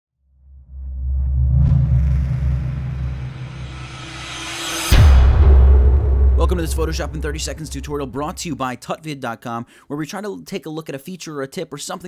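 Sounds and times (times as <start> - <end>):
deep rumble: 0.4 - 8.6.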